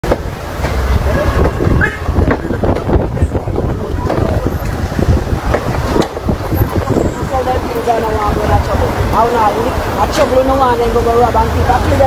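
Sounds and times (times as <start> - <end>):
wind buffeting microphone: 0.0 - 12.0
people talking: 0.8 - 12.0.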